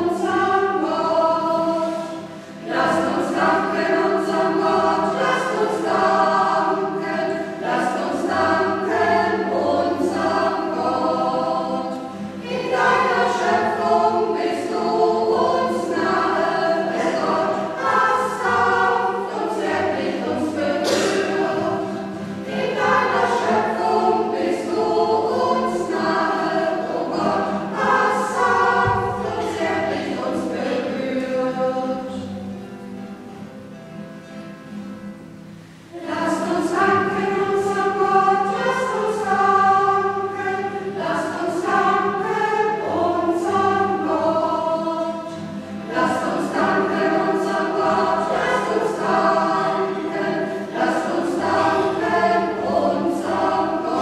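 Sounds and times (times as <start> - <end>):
choir singing a hymn: 0.0 - 32.7, 35.4 - 54.0.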